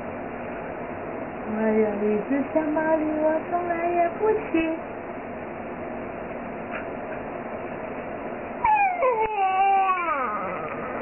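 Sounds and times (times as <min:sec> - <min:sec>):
baby whining: 0:08.6 - 0:11.0.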